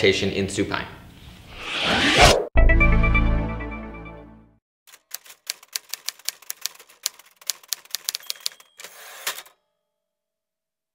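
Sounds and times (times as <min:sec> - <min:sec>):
typewriter keys clacking: 0:04.9 - 0:09.5
typewriter bell ring: 0:07.7 - 0:09.5.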